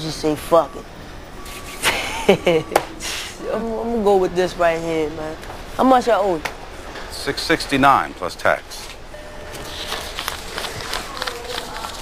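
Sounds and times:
banknotes rustling being counted: 0:09.5 - 0:12.0.

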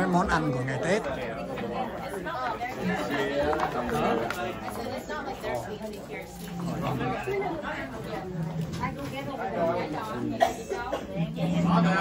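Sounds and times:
many voices chatting: 0:00.0 - 0:12.0.

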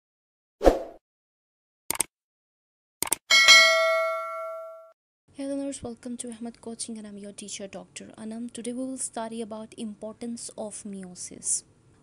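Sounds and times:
bright bell chime: 0:03.3 - 0:04.9.

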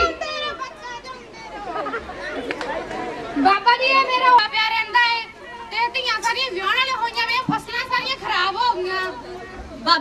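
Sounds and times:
girl speaking into a microphone: 0:00.0 - 0:01.7.

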